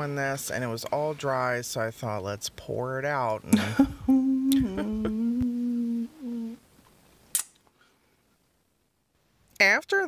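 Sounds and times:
woman humming: 3.5 - 6.6.

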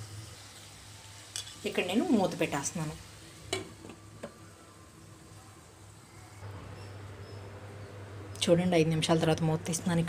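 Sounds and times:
food sizzling in oil: 0.0 - 6.4.

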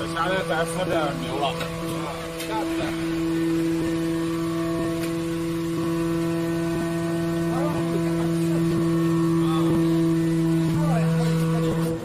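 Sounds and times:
hydraulic pump motor humming: 0.0 - 12.0.

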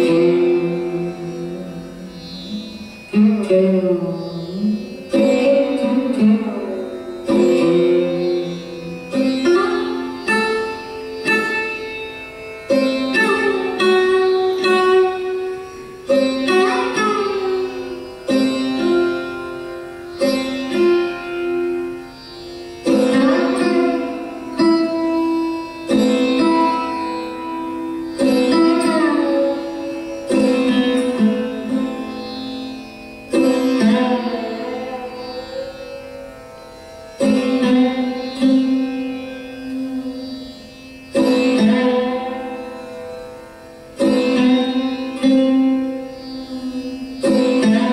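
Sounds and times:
sarod plucked notes: 0.0 - 47.9.

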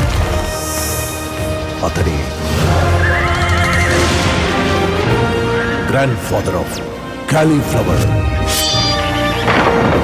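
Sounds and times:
music: 0.0 - 10.0
horse whinnying: 2.9 - 4.1.

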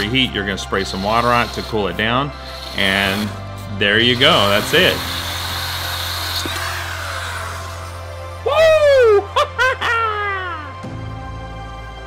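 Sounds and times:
electric drill grinding ceramic: 0.0 - 8.6.

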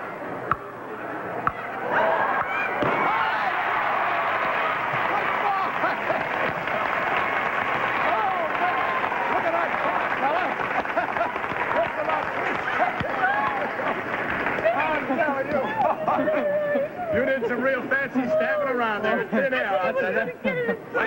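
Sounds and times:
audience cheering and clapping: 1.8 - 16.2
studio audience laughing: 5.5 - 6.9, 10.7 - 14.0.

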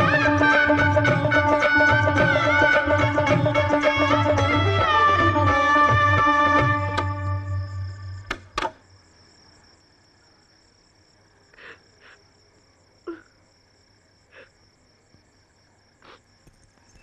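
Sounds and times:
music: 0.0 - 8.5
crickets chirring: 0.0 - 17.0.

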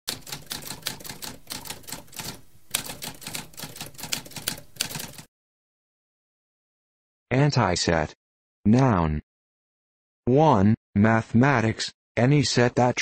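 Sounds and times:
typewriter keys clicking: 0.1 - 5.3.

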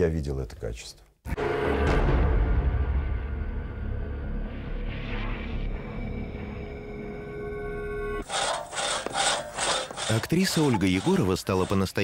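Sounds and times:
rasping scrapes: 8.2 - 12.0.

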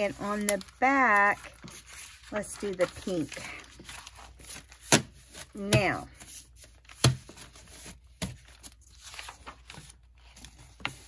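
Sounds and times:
soft paper rustling: 0.0 - 11.0.

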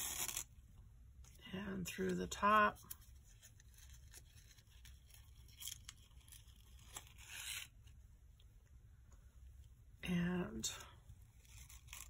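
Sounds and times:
ribbon rustling against paper card: 1.2 - 8.0.

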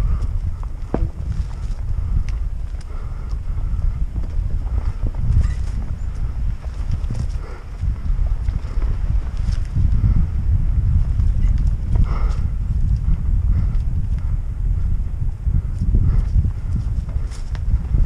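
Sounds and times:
bike tyres rumbling on dirt: 0.0 - 18.0.

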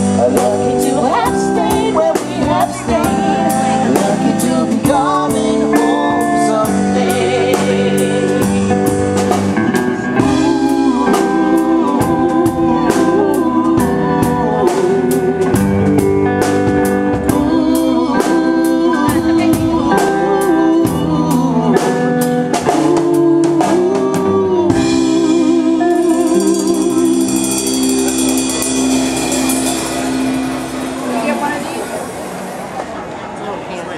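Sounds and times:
live pop band playing: 0.0 - 33.4.

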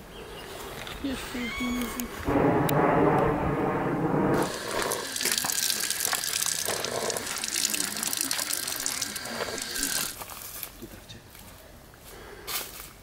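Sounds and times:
running water splashing: 4.4 - 10.2.

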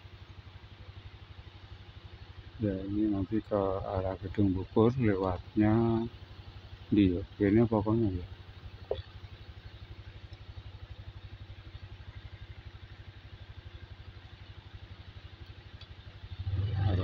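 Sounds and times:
motorcycle engine idling: 0.0 - 17.0.

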